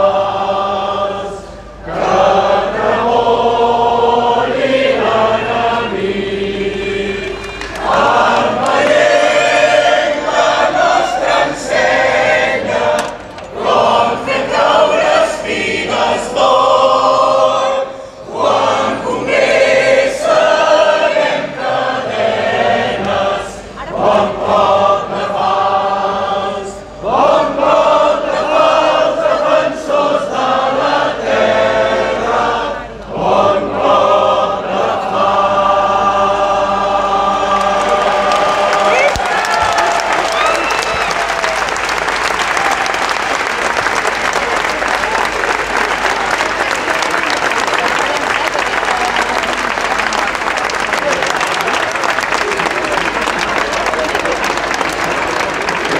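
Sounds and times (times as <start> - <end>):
crowd singing along: 0.0 - 40.2
choir singing through microphones: 0.0 - 40.4.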